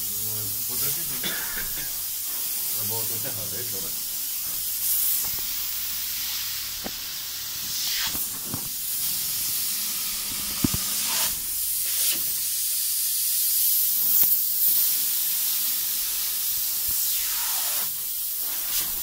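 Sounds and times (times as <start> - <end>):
spray-foam gun hissing: 0.0 - 19.0.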